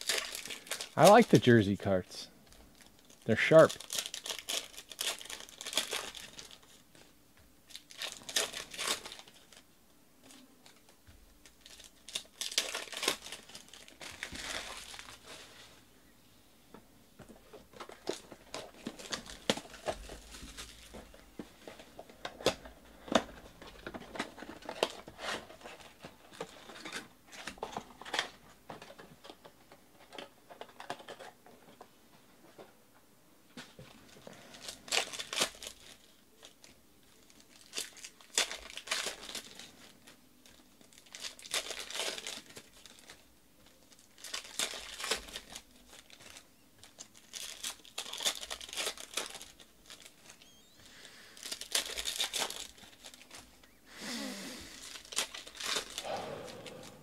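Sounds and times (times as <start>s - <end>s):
foil packs tearing and crinkling: 0.0s - 1.6s, 2.7s - 7.1s, 7.7s - 15.7s, 17.8s - 28.3s, 34.3s - 53.6s, 54.7s - 56.8s
cards rustling and clicking: 43.9s - 53.6s.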